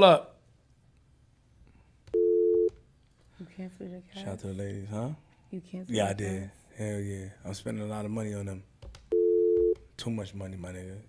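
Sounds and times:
two-note telephone tone: 2.1 - 2.8, 9.1 - 9.8.

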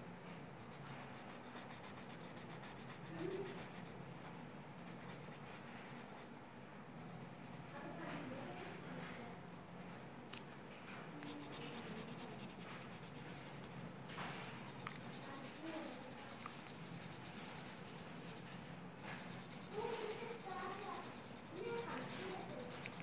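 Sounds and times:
marker scratching on paper: 0.6 - 4.0, 4.8 - 6.3, 11.2 - 23.0.

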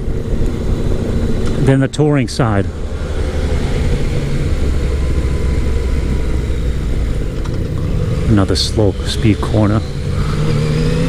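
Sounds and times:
motorcycle engine running steadily: 0.0 - 11.0.

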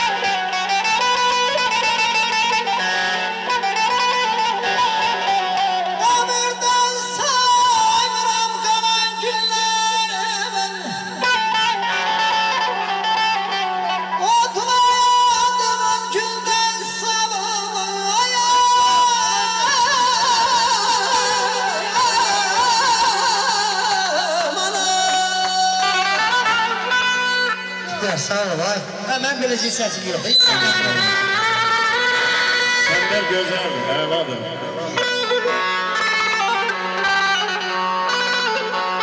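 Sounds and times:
electronic keyboard violin-like melody: 0.0 - 39.0
amplified man singing: 5.7 - 11.9, 14.2 - 26.6.

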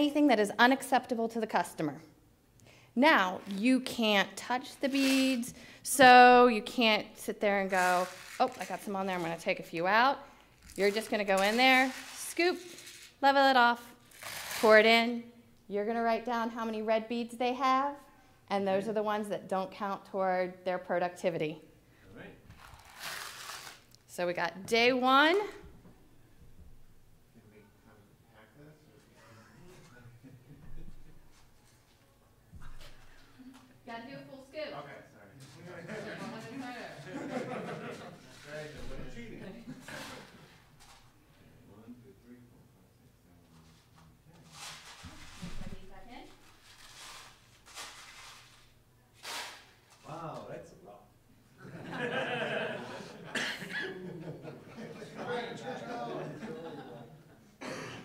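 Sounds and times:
people talking: 0.0 - 2.0, 3.0 - 10.2, 10.8 - 12.6, 13.2 - 13.9, 14.6 - 21.6, 24.1 - 25.6, 35.4 - 40.4, 54.2 - 57.1.

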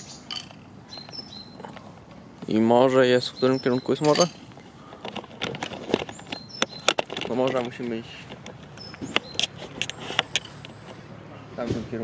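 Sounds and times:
high bird chirps: 0.0 - 1.7, 3.0 - 5.0, 6.0 - 7.0, 8.7 - 10.9
camera handling clicks and rustles: 4.0 - 11.0.

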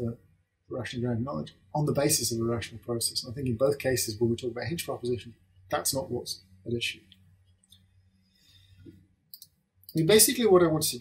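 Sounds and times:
man speaking: 0.0 - 7.1, 9.9 - 11.0.

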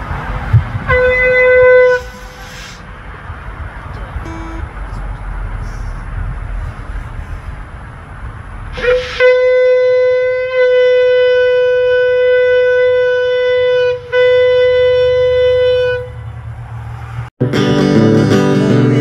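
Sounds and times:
shofar blasts: 0.9 - 2.5, 8.7 - 16.3.

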